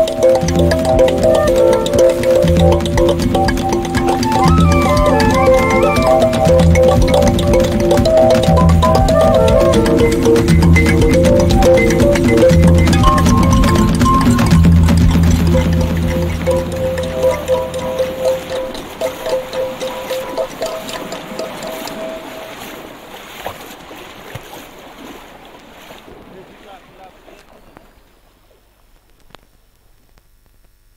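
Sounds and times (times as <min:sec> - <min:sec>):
dub music deep bass line: 0:00.0 - 0:22.4
higher melodic notes: 0:00.0 - 0:23.2.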